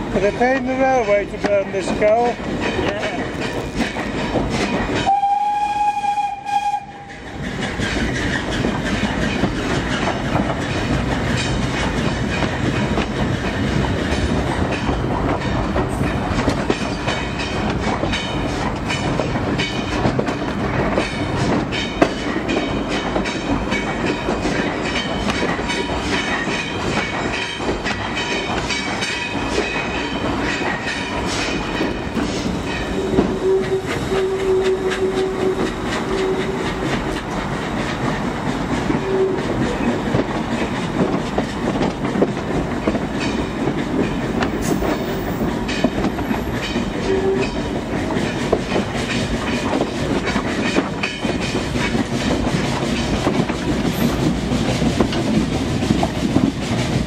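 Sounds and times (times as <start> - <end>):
train rumble and wheel clatter: 0.0 - 57.0
short train whistle: 5.0 - 7.2, 33.0 - 36.7, 39.0 - 39.5, 47.0 - 47.6.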